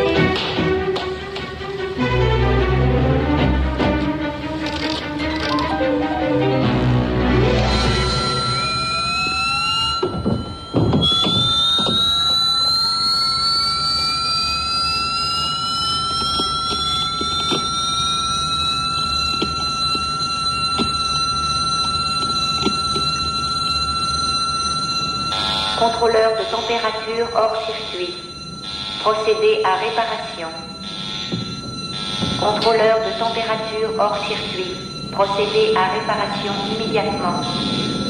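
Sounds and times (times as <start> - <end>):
electronic alarm tones: 7.4 - 38.0.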